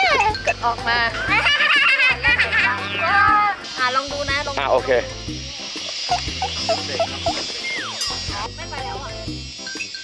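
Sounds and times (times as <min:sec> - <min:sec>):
background music: 0:00.0 - 0:10.0
descending slide whistle: 0:07.6 - 0:08.0.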